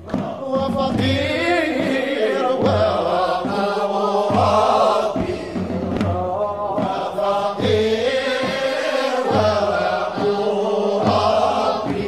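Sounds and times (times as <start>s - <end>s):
group chanting devotional song: 0.0s - 12.0s.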